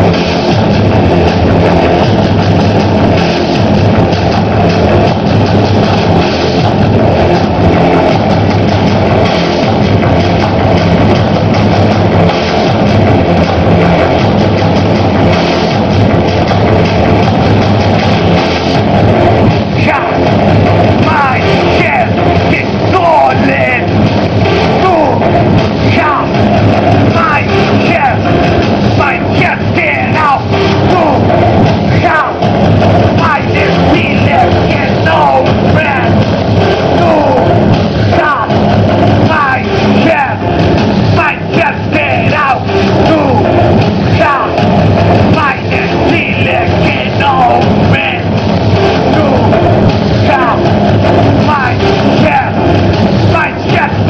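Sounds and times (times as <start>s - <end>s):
electronic band performing live: 0.0s - 54.0s
loud synthesizer music: 0.0s - 54.0s.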